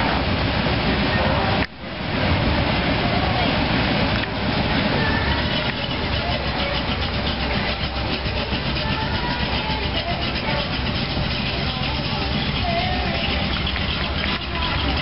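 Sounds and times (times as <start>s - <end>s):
car engine rumbling: 0.0s - 15.0s.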